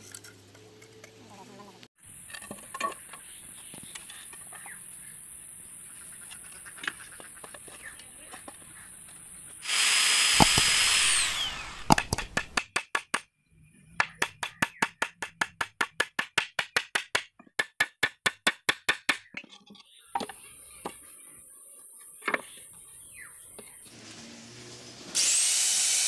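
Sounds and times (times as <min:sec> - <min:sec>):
power drill whining: 0:09.6 - 0:12.1
hammer driving nail into wood: 0:10.3 - 0:10.8, 0:11.8 - 0:13.2.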